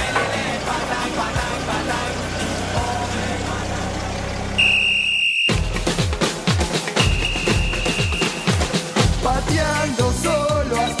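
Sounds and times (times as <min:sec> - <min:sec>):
music playing: 0:00.0 - 0:04.2, 0:05.5 - 0:11.0
car engine running: 0:00.0 - 0:09.8
high beep: 0:04.6 - 0:05.6.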